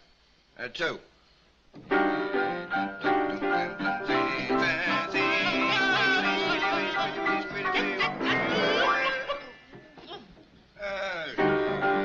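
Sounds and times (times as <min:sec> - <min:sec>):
two men singing: 0:03.0 - 0:09.5.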